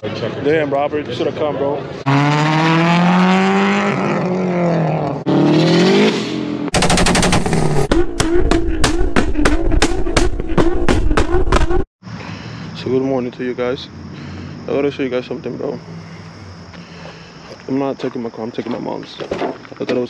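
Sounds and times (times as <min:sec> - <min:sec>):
car engine revving: 0:02.0 - 0:11.9
exhaust pops and bangs: 0:06.7 - 0:11.9.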